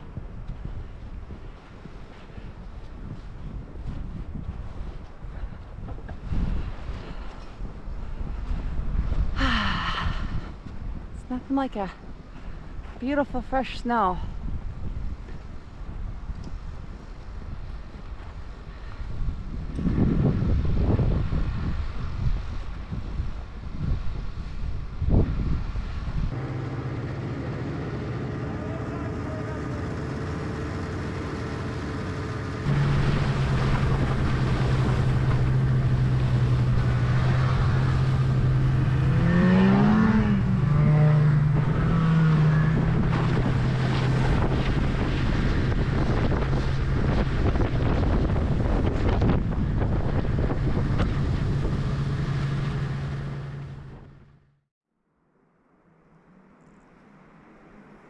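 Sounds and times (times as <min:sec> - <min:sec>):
wind buffeting microphone: 0:00.0 - 0:28.4, 0:29.5 - 0:54.3
snowmobile engine running: 0:26.4 - 0:54.4.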